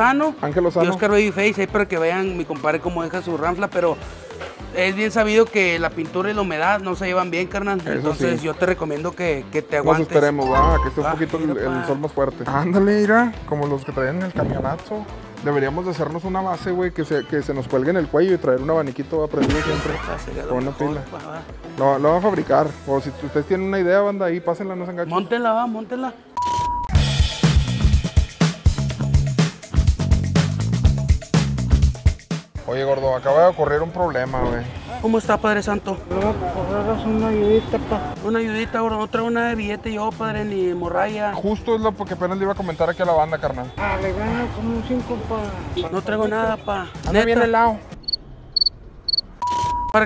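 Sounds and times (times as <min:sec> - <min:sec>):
short electronic beep: 0:10.4 - 0:11.2, 0:26.4 - 0:26.9, 0:48.0 - 0:50.0
music with bass and drums: 0:26.9 - 0:32.7
cricket chirps: 0:48.0 - 0:49.2.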